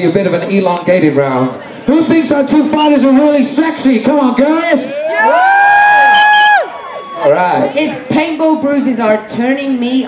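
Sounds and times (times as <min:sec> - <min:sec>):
faint crowd cheering: 0:04.8 - 0:07.8
woman whooping: 0:05.0 - 0:07.3.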